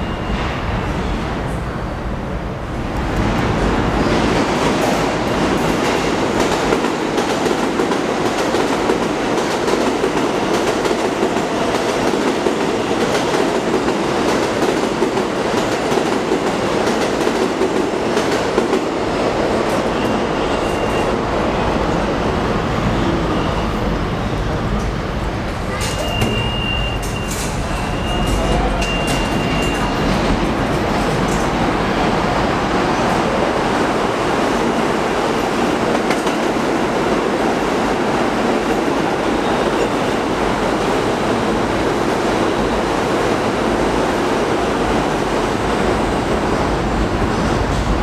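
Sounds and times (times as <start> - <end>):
subway train rumbling past: 0.0 - 48.0.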